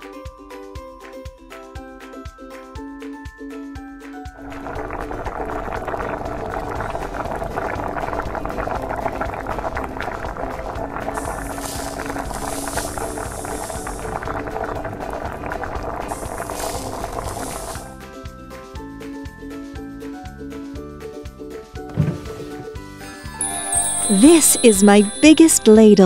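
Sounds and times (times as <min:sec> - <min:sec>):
background music: 0:00.0 - 0:26.0
bubbling boiling sound effect: 0:04.4 - 0:18.0
high hiss: 0:11.2 - 0:14.2, 0:16.1 - 0:17.9.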